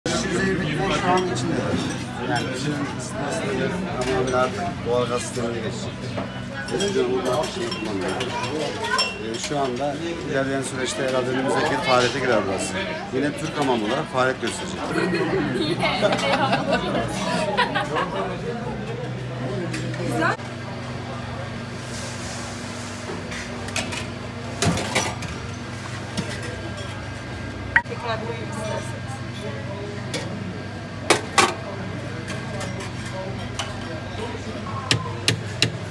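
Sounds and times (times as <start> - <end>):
people chatting: 0.1 - 20.4
cutlery and dishes clinking: 6.7 - 10.0.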